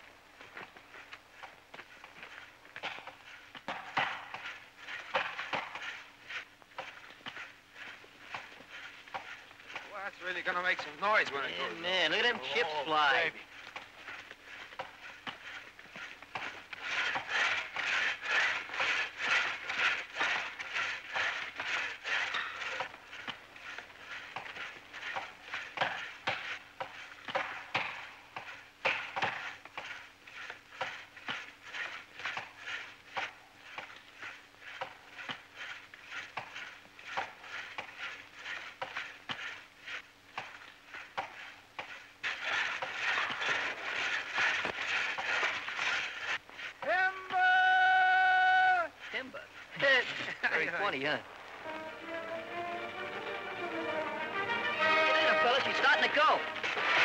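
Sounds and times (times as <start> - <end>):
axes chopping tree trunk: 2.8 - 6.1, 13.7 - 39.6, 40.3 - 46.2.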